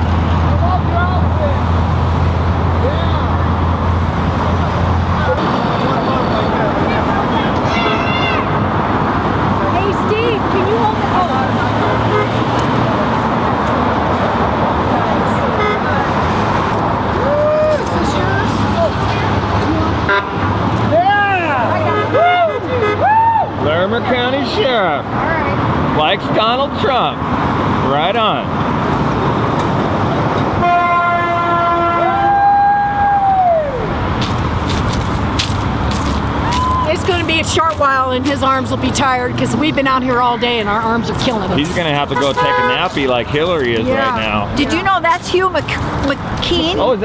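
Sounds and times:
road traffic passing: 0.0s - 47.0s
people shouting: 7.2s - 8.7s, 17.1s - 18.9s, 20.9s - 23.6s, 31.9s - 33.9s, 36.4s - 37.0s
vehicle horn honking: 11.8s - 12.5s, 15.6s - 16.0s, 20.0s - 20.6s, 21.7s - 23.0s, 30.6s - 32.2s, 42.1s - 42.9s.

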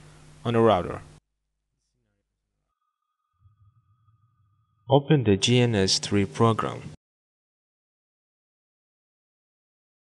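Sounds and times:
faint background hum: 0.0s - 1.2s, 3.4s - 7.0s
man narrating: 0.4s - 1.1s, 4.9s - 7.0s.

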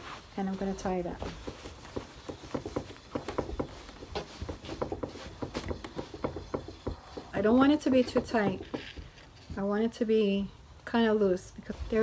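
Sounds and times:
bed sheet rustling and crackling: 0.0s - 5.5s.

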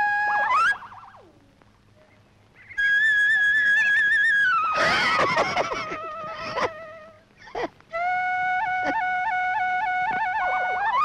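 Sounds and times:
held flute note: 7.9s - 11.0s.

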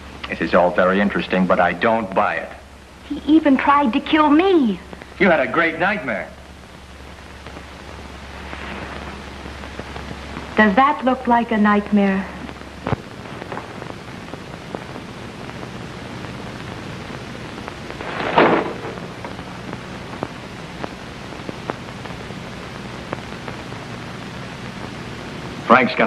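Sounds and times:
film soundtrack hiss and hum: 0.0s - 26.0s
faint crackle clicks: 4.8s - 5.2s, 6.6s - 25.6s
short burst of noise: 18.0s - 19.3s.

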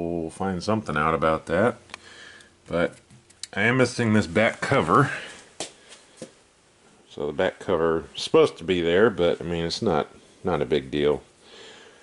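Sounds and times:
man's voice: 3.6s - 5.4s.

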